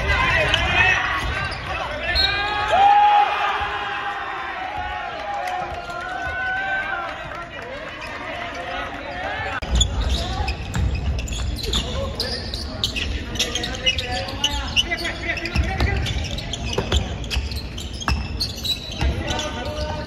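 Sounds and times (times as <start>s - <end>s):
players shouting: 0.0s - 10.2s
players' voices: 0.0s - 20.0s.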